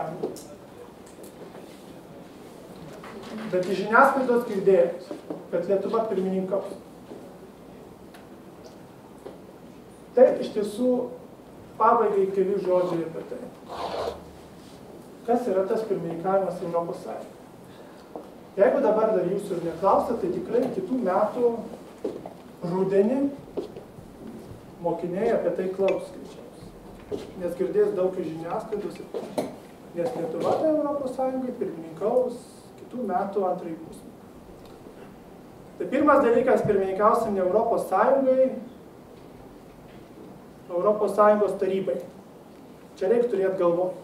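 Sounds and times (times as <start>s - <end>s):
man speaking: 3.5s - 6.8s, 10.2s - 11.2s, 11.8s - 13.6s, 15.2s - 17.3s, 18.6s - 21.8s, 22.6s - 23.4s, 24.8s - 26.7s, 27.4s - 29.2s, 29.9s - 34.1s, 35.8s - 38.7s, 40.7s - 42.1s, 43.0s - 44.0s.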